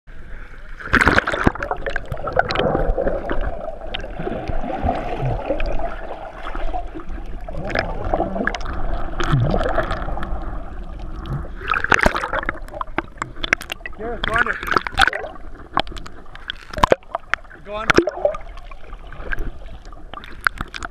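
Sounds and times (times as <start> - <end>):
underwater rushing water: 0.1 - 20.9
underwater clicks and bubbling: 0.7 - 20.9
splashing: 0.8 - 20.9.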